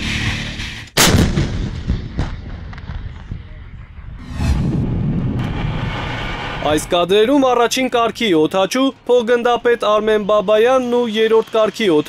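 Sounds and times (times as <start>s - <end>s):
artillery firing: 1.0s - 3.5s.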